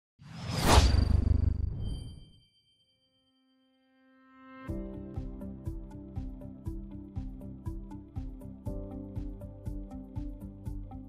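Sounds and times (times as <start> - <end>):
whoosh: 0.2 - 2.4
thin high ringing tone: 0.6 - 4.2.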